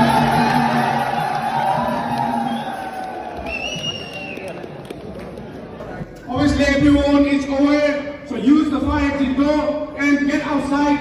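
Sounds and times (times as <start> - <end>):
music: 0.0 - 4.6
crowd chatter in echoing hall: 0.0 - 11.0.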